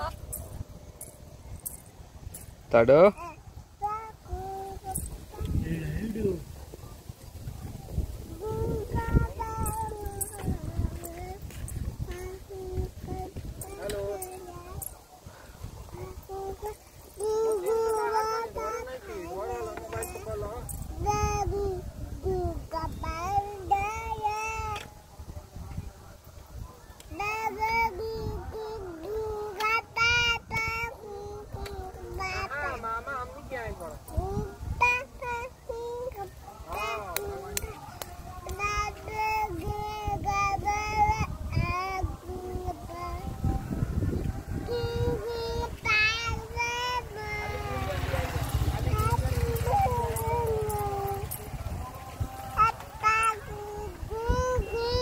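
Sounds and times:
toddler girl singing: 3.1 - 5.7, 7.2 - 24.9, 27.0 - 32.6, 33.9 - 55.0.

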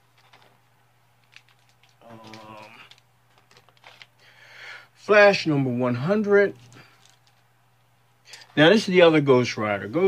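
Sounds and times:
light rustling of comic book: 0.0 - 4.2, 6.5 - 7.5
person saying um: 2.0 - 2.9.

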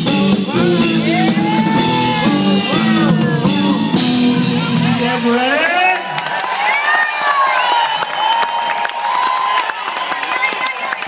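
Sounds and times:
shouted cheers: 1.0 - 4.1, 5.4 - 11.0
audience clapping: 5.5 - 11.0.

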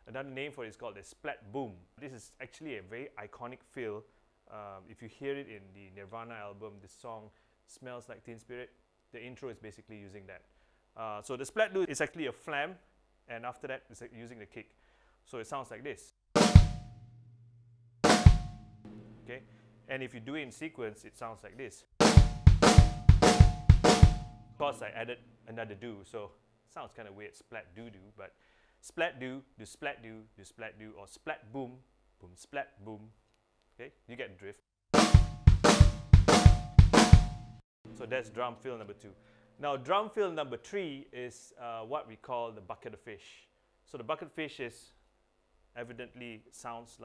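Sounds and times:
bass drum kick: 16.4 - 16.9, 18.0 - 19.3, 22.0 - 24.4, 35.0 - 37.6
snare drum flam: 16.4 - 16.9, 18.0 - 19.2, 22.0 - 24.4, 35.0 - 37.6.

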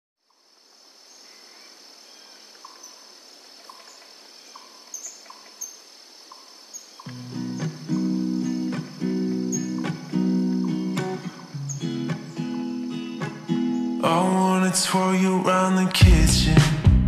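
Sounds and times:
cricket-like insect drone: 0.2 - 14.0
bird chirps: 1.1 - 14.6
reverb-heavy acoustic guitar: 7.1 - 17.0.

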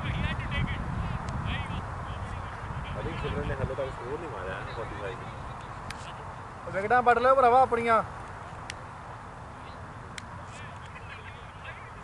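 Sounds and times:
wind rumbling on microphone: 0.0 - 6.3
distant voices: 0.0 - 12.0.

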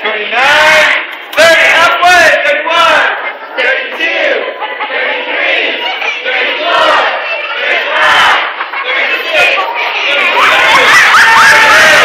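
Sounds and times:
children shouting and cheering: 0.3 - 12.0.

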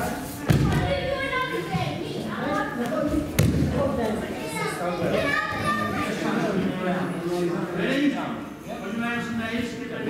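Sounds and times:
people talking in a hall: 0.0 - 10.0.

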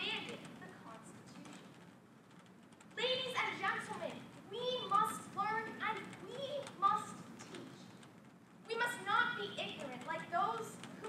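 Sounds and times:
girl giving a speech: 0.0 - 1.7, 3.0 - 7.9, 8.7 - 11.0.

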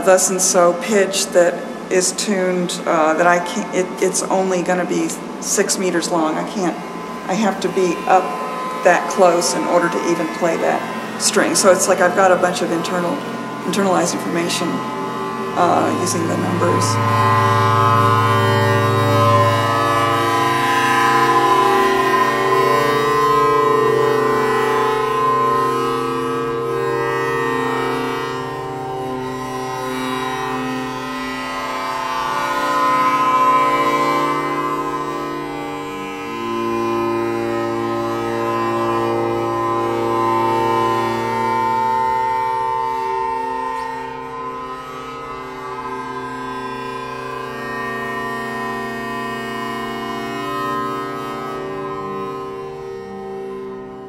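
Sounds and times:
bowled metal wires droning: 0.0 - 54.0
cello: 0.0 - 54.0.

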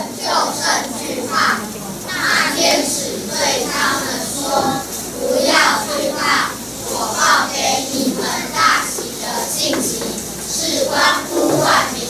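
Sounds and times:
children's voices in unison: 0.0 - 12.0.

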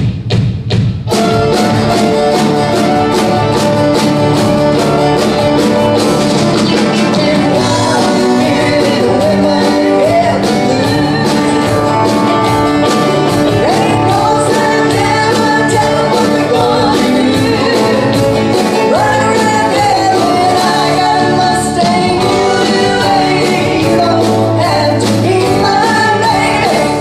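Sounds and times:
country band playing: 1.0 - 27.0
woman singing: 6.8 - 27.0.

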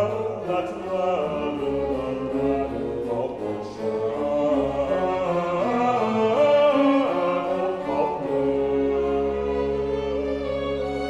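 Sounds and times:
man singing: 0.0 - 9.8
string orchestra: 0.0 - 11.0.

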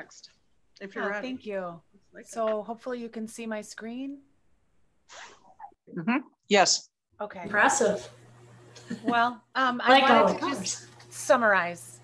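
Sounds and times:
woman speaking: 0.8 - 4.2, 7.2 - 8.1, 9.0 - 12.0
person saying mm-hmm: 5.9 - 6.3.

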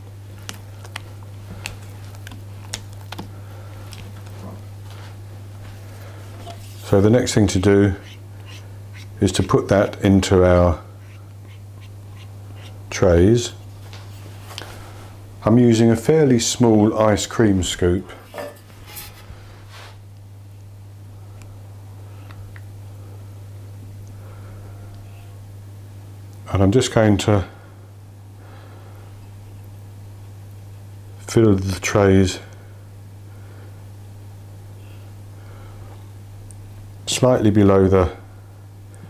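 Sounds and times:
steady low hum: 0.0 - 39.0
spatula stirring batter: 6.4 - 9.5, 10.9 - 12.8.

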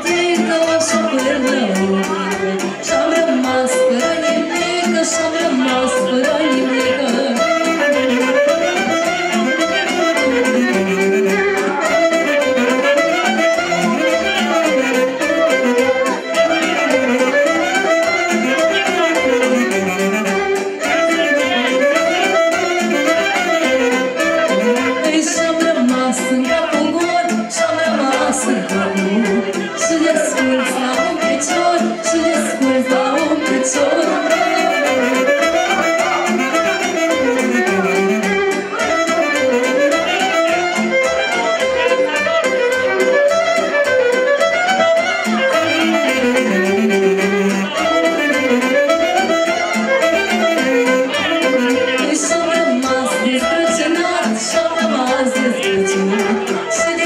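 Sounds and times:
fiddle folk dance melody: 0.0 - 57.0
steady beat: 0.0 - 57.0.

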